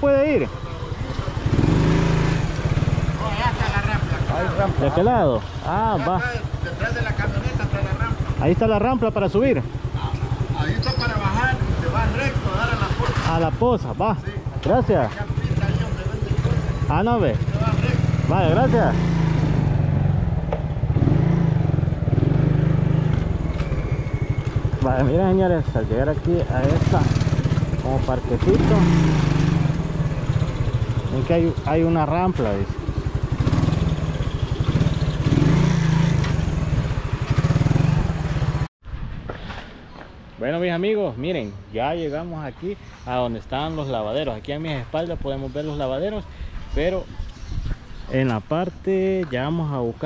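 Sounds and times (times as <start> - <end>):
motorcycle engine idling: 0.0 - 38.7.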